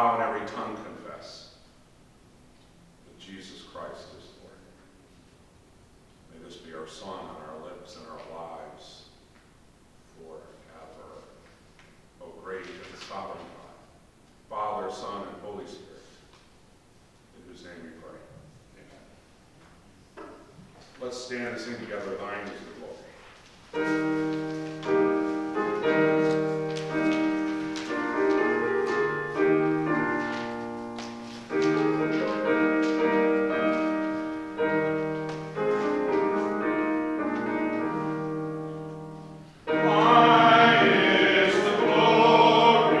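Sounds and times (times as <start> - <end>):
piano playing hymn chords: 23.7 - 43.0
congregation singing a hymn: 39.6 - 43.0.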